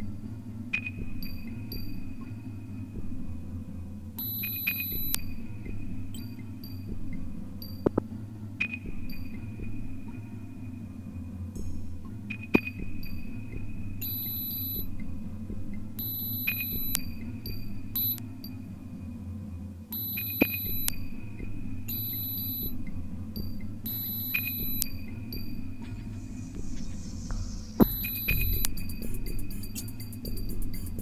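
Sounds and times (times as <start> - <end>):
low droning pulse: 0.0 - 31.0
high-pitched electronic beeps: 4.2 - 8.0, 14.0 - 15.2, 16.0 - 18.6, 19.9 - 30.9.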